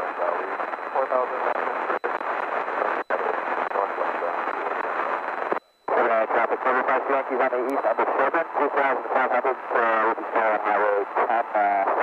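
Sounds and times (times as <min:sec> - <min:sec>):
pilot speaking over radio: 0:00.0 - 0:12.0.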